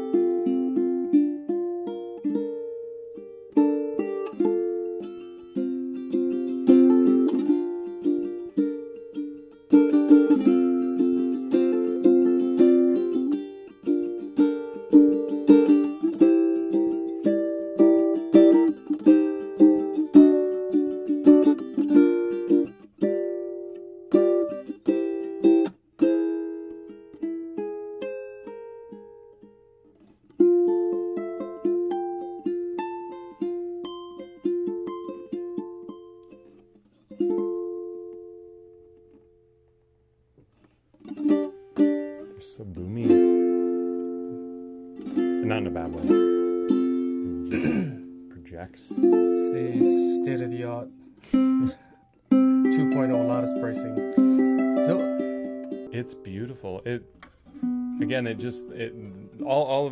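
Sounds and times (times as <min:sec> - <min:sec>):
ukulele strumming and picking: 0:00.0 - 0:59.9.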